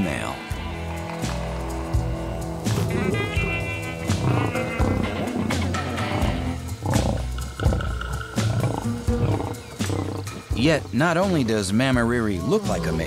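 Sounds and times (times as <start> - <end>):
documentary music: 0.0 - 13.0
lion growling: 1.2 - 11.6.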